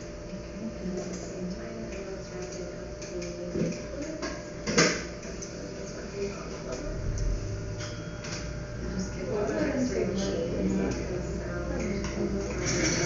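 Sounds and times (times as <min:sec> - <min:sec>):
faint indistinct voices: 0:00.2 - 0:13.0.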